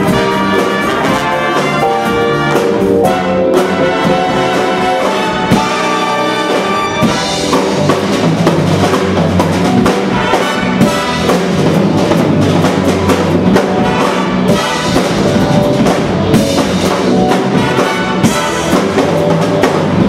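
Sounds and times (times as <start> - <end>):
big jazz band playing: 0.0 - 20.0.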